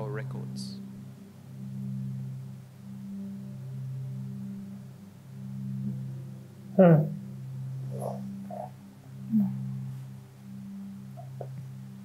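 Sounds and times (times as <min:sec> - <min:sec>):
low ambient music drone: 0:00.0 - 0:12.0.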